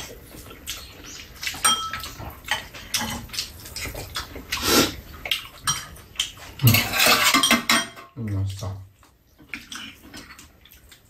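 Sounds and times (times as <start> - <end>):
utensils clinking on metal bowls: 1.5 - 3.3, 5.6 - 8.2.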